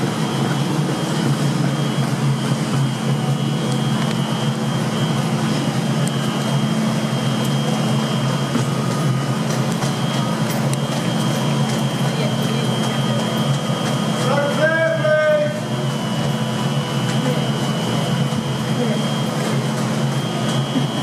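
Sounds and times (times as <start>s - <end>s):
high-pitched whine: 0.0s - 21.0s.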